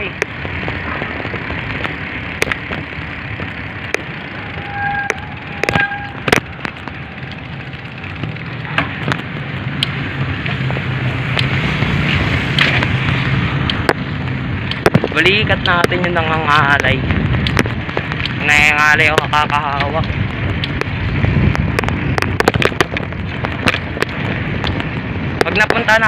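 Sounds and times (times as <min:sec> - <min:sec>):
bicycle rolling on concrete: 0:00.0 - 0:26.0
wind on microphone: 0:00.0 - 0:26.0
sharp clicks: 0:00.1 - 0:04.2, 0:05.0 - 0:10.6, 0:13.6 - 0:25.9.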